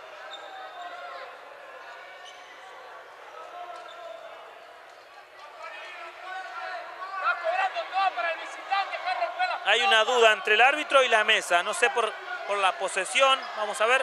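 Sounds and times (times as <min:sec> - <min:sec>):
murmur of spectators: 0:00.0 - 0:14.0.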